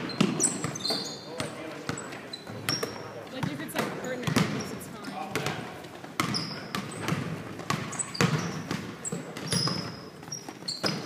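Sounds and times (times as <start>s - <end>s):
basketball bouncing on hardwood: 0.0s - 4.7s, 5.3s - 11.0s
voices in reverberant hall: 0.0s - 10.4s
sneaker squeaks: 0.0s - 11.0s.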